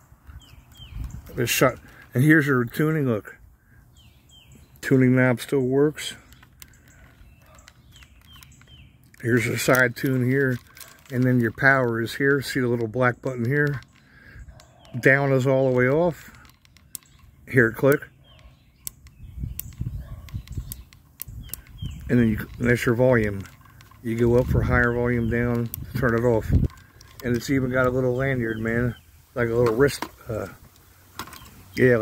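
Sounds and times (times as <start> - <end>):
birds chirping: 0.0 - 32.0
sharp clicks: 6.1 - 32.0
radio tuning wheel clicks: 18.8 - 28.8.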